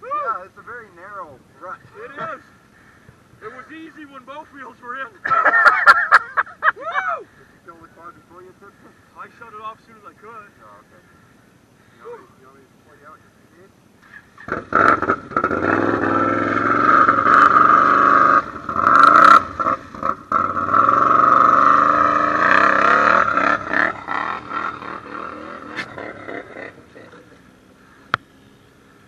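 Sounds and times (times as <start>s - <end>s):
atv engine revving: 14.0s - 29.0s.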